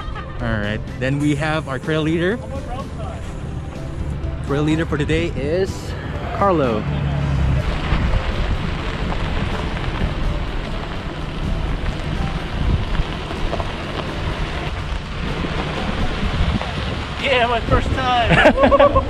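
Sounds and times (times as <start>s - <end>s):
wind buffeting microphone: 3.4s - 19.0s.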